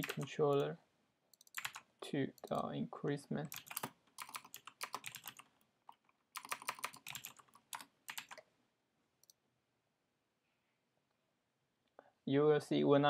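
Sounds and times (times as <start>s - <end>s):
typing on computer keyboard: 0.0s - 0.7s, 1.4s - 2.6s, 3.5s - 8.4s.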